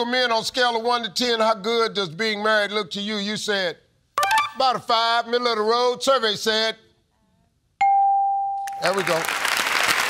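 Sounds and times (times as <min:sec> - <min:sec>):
man speaking: 0:00.0 - 0:06.9, 0:08.8 - 0:09.3
electronic chime ding: 0:04.2 - 0:04.6, 0:07.8 - 0:08.7.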